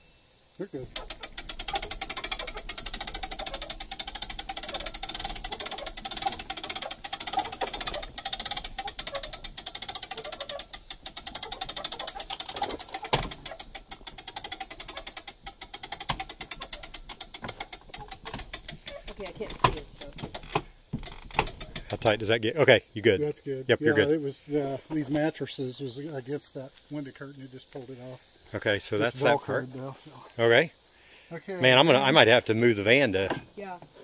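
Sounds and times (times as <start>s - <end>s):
crank gearing clicking: 0.7s - 22.4s.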